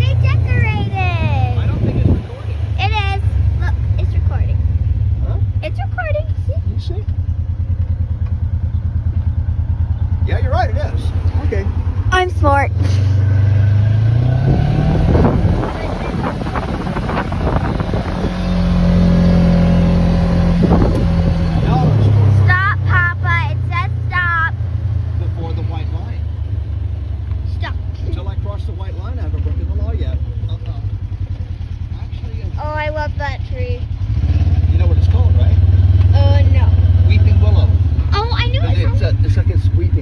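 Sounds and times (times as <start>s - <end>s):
four-wheeler engine revving: 0.0s - 40.0s.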